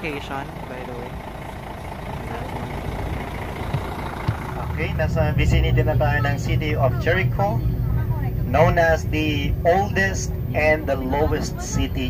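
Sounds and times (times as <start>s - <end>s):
diesel engine idling: 0.0s - 12.0s.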